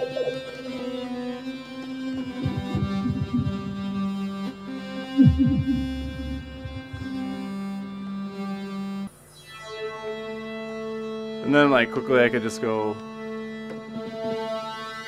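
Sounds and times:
held synth tones: 2.2s - 4.4s, 5.0s - 7.4s
swooping synth sweeps: 2.3s - 4.1s, 5.2s - 7.4s.

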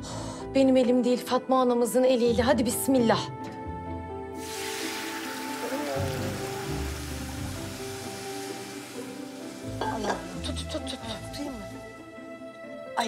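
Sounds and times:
music: 0.0s - 13.0s
syrup sizzling in a pot: 4.4s - 12.1s.

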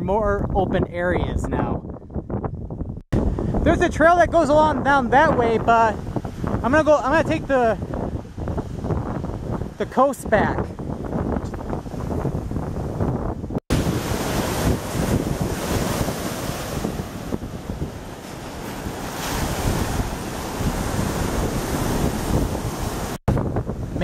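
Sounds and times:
wind buffeting microphone: 0.0s - 24.0s
surf washing onto sandy shore: 5.0s - 24.0s.

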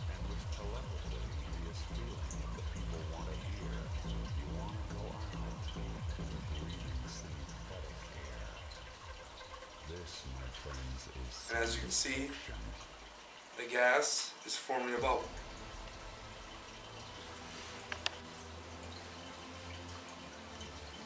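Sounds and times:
dry ice bubbling in water: 0.0s - 13.5s.

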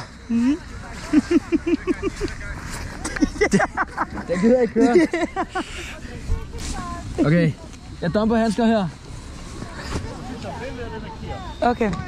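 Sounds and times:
person laughing: 0.3s - 2.4s, 3.0s - 5.8s.

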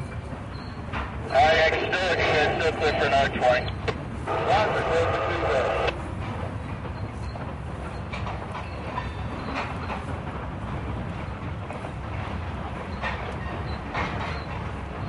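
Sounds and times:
freight cars rumbling on bridge: 0.0s - 15.0s
people talking: 1.3s - 6.0s.

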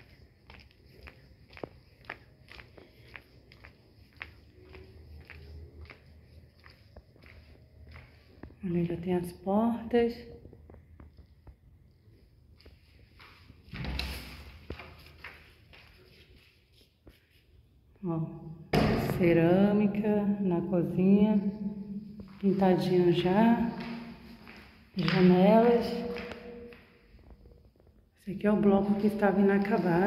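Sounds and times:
footsteps walking: 0.0s - 9.1s, 10.4s - 17.4s, 21.3s - 28.0s, 28.6s - 30.0s.

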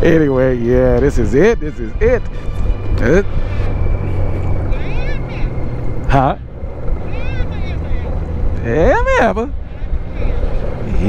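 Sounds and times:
motorcycle engine running: 0.0s - 11.0s
road noise: 0.0s - 11.0s
wind: 0.0s - 11.0s.

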